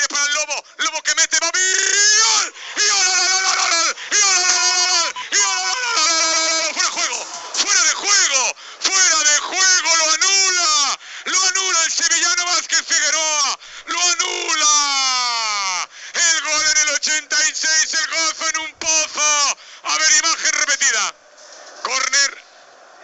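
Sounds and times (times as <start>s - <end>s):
man shouting drawn-out cries: 0.0s - 21.1s.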